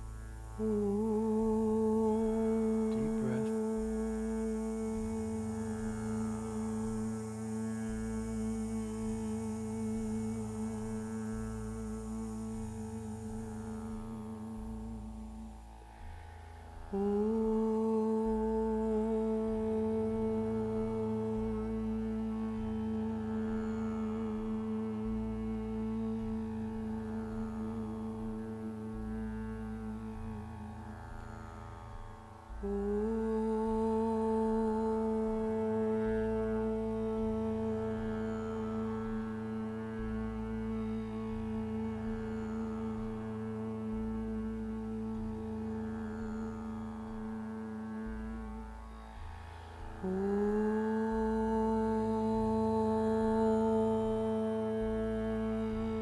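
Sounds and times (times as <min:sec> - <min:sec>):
low drone: 0:00.0 - 0:31.3
person chanting om: 0:00.0 - 0:56.0.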